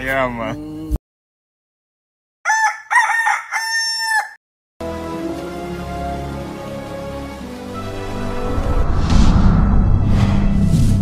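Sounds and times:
rooster crowing: 2.4 - 4.4
music with sustained tones: 4.8 - 10.8.

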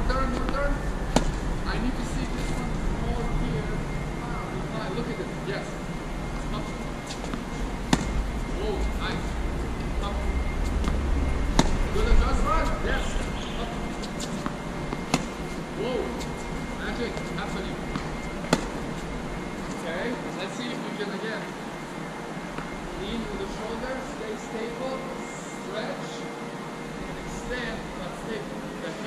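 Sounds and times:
tennis balls struck by rackets: 0.2 - 1.5, 6.4 - 8.4, 10.7 - 19.8
low rumble: 7.6 - 13.5.

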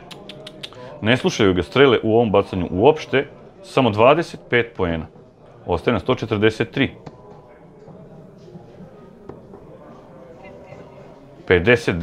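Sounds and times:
indoor hall murmur: 0.0 - 12.0.

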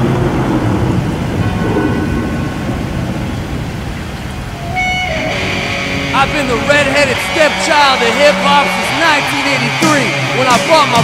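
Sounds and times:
low rumble with hiss: 0.0 - 9.3
held pitched note: 4.5 - 9.8.

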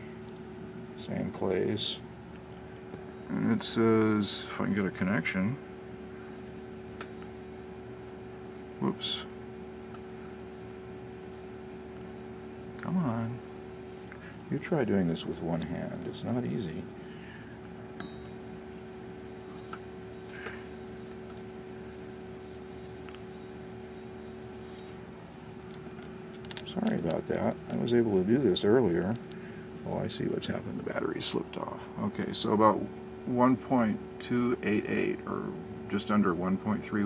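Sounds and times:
faint hum: 0.0 - 37.0.

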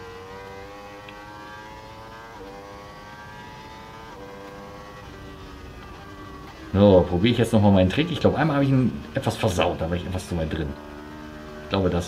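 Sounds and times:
racing motorcycle engine: 0.0 - 12.0.

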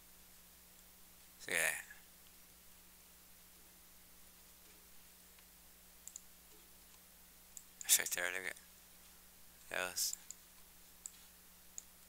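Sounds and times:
faint electrical hum: 0.0 - 12.0
computer mouse clicks: 4.6 - 8.0, 10.1 - 12.0.

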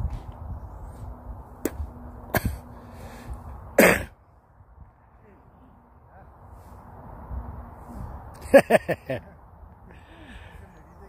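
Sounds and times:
wind rumbling on microphone: 0.0 - 3.8, 4.4 - 8.5
loud cough: 3.8 - 4.1.

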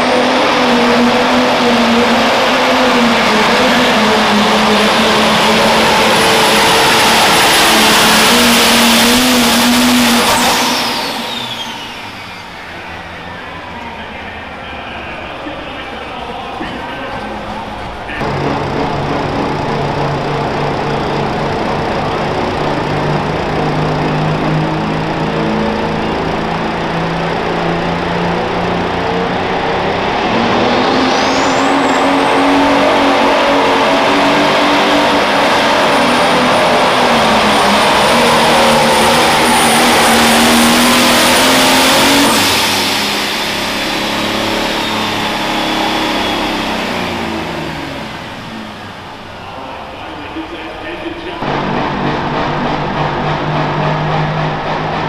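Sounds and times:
diesel tractor engine under load: 0.0 - 55.0
high turbo whistle: 0.0 - 55.0.

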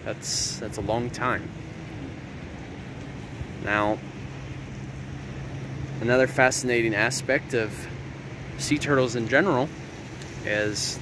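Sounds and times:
constant low hum: 0.0 - 11.0
surf: 0.0 - 11.0
wind: 0.0 - 11.0.

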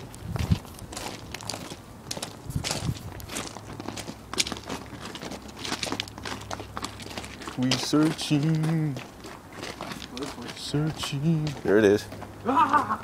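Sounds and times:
footsteps on gravel: 0.0 - 13.0.

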